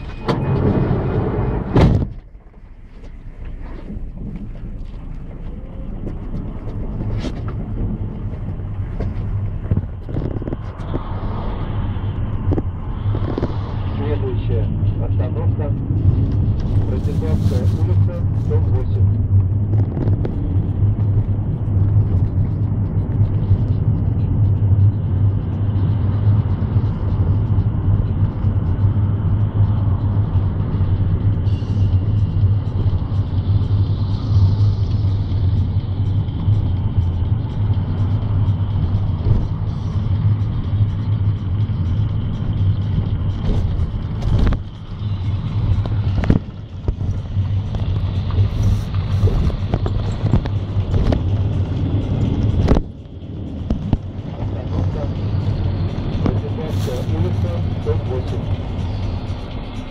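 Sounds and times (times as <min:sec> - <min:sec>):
bus engine hum: 0:00.0 - 0:59.9
road noise: 0:00.0 - 0:59.9.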